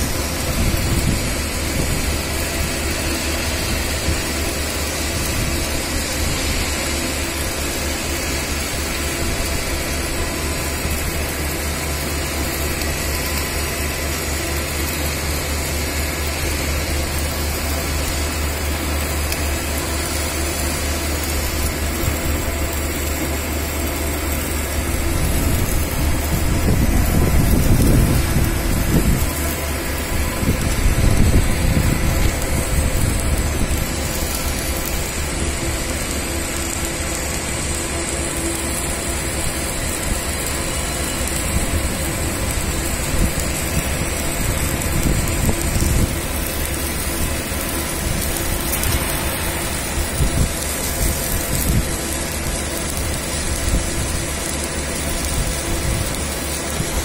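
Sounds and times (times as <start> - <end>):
machine hum with hiss: 0.0 - 57.0.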